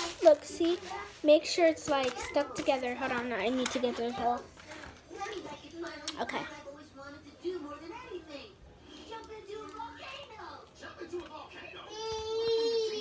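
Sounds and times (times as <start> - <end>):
child's high cry: 12.0 - 13.0.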